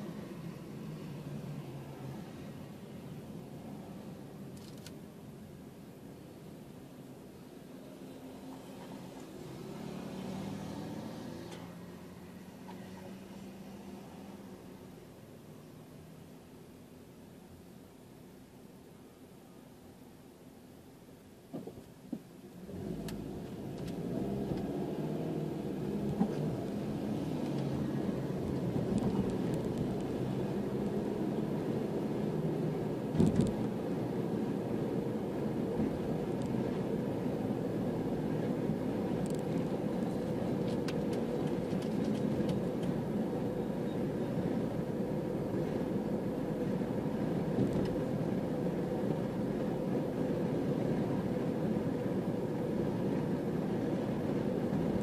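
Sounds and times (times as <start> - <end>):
road noise from inside car: 0.0 - 55.0
car engine accelerating: 8.8 - 13.7, 22.6 - 44.2
thump: 21.5 - 22.2, 33.1 - 33.6.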